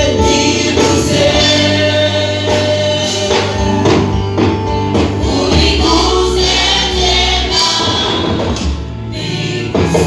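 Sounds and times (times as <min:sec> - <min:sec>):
choir and congregation singing: 0:00.0 - 0:10.0
low musical accompaniment: 0:00.0 - 0:10.0.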